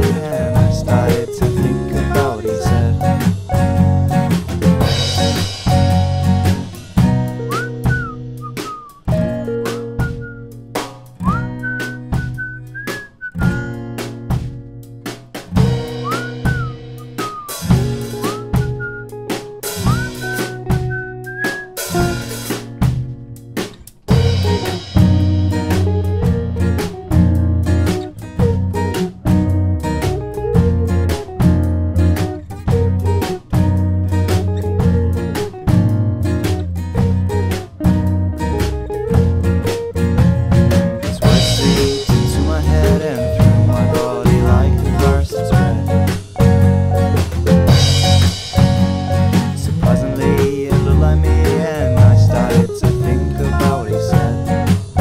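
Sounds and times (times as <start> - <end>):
indie rock band playing: 0.0 - 55.0
sliding lead guitar line: 0.0 - 55.0.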